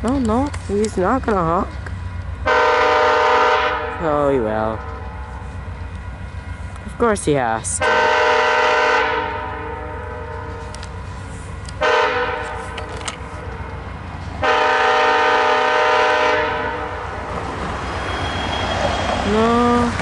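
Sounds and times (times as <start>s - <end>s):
diesel locomotive rumble: 0.0s - 20.0s
locomotive horn blasts: 2.4s - 4.0s, 7.8s - 9.9s, 11.8s - 12.7s, 14.4s - 17.0s.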